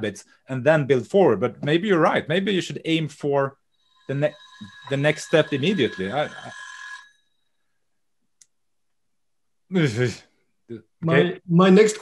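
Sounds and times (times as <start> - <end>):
kitchen timer bell ringing: 3.9 - 7.2.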